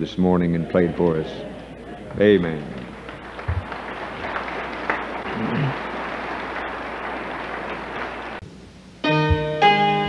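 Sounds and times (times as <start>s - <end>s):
crowd clapping: 2.0s - 8.4s.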